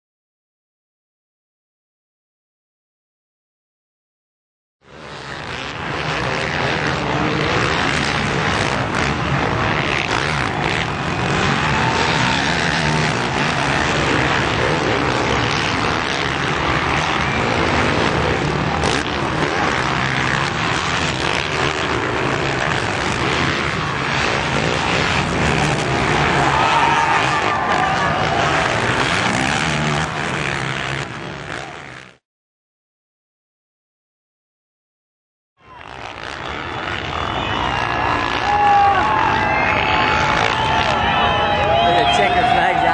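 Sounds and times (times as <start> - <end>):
dirt bike engines revving: 4.8 - 32.2, 35.6 - 42.9
steady background noise: 4.8 - 32.2, 35.6 - 42.9.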